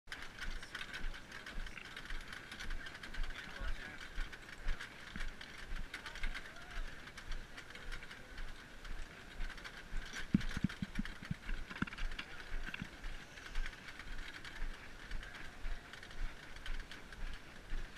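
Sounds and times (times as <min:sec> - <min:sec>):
snare drum rattling and clicking: 0:00.2 - 0:17.9
group of people talking: 0:00.4 - 0:17.9.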